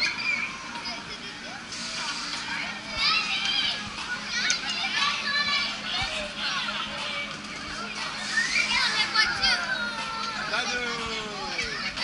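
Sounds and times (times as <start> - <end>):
children calling out and squealing: 0.0 - 1.7, 8.2 - 10.5.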